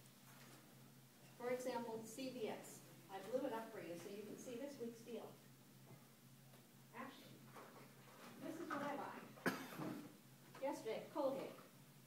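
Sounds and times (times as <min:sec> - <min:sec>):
person coughing: 0:09.4 - 0:10.1.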